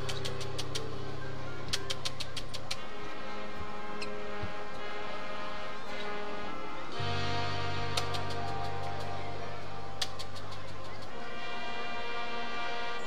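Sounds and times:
marching band playing: 2.8 - 13.0.

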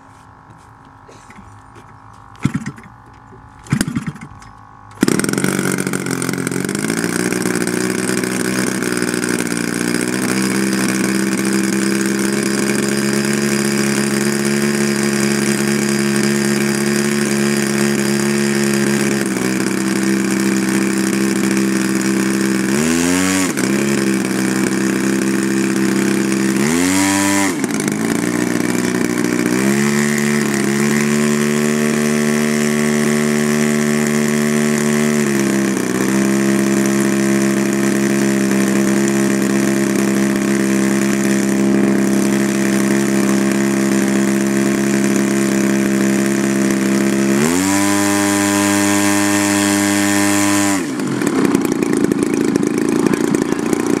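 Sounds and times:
model airplane engine revving: 2.2 - 54.0.

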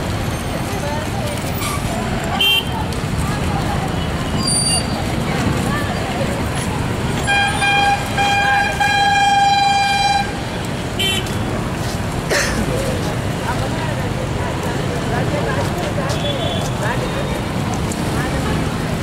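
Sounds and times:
crowd voices: 0.0 - 19.0
traffic noise: 0.0 - 19.0
vehicle horn honking: 7.2 - 10.4, 11.0 - 11.4.

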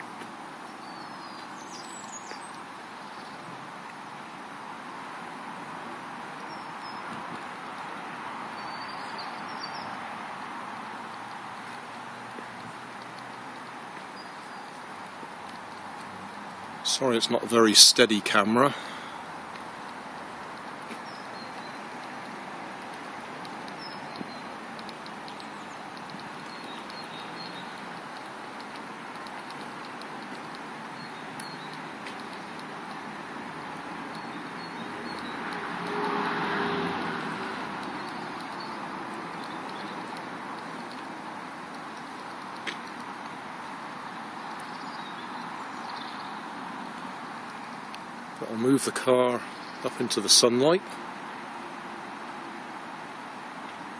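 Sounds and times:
distant road traffic: 0.0 - 53.9
faint bird chirps: 0.7 - 3.5, 8.5 - 10.0
vehicle passing: 14.7 - 44.5.

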